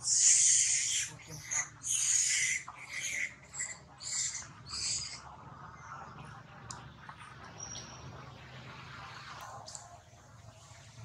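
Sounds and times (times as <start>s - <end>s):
high-pitched animal calls: 0.0s - 5.3s.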